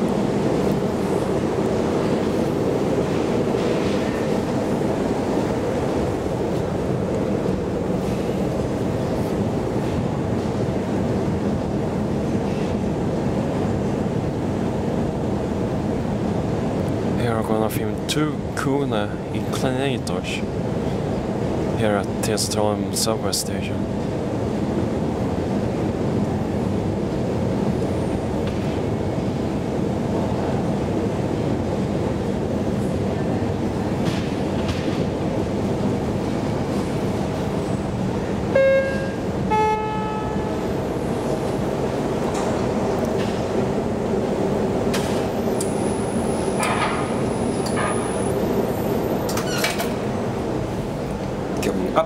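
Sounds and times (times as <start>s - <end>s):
elevator cab rumbling: 0.0s - 22.2s, 23.8s - 52.0s
two-note chime: 38.6s - 40.5s.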